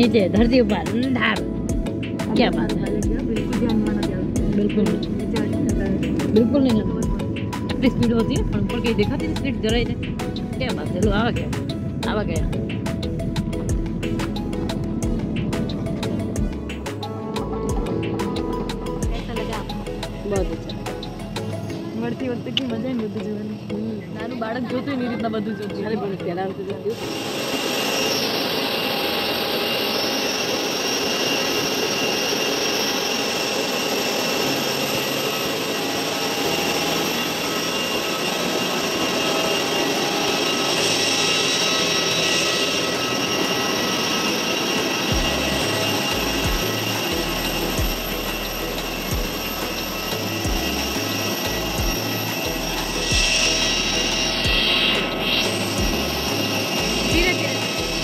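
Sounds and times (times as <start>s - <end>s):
low bass line music: 0.0s - 22.1s, 45.1s - 58.0s
jet engine hissing and whining: 0.0s - 58.0s.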